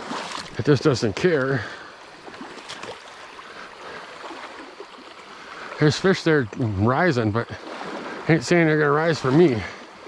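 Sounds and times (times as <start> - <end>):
creek water rushing: 0.0 - 10.0.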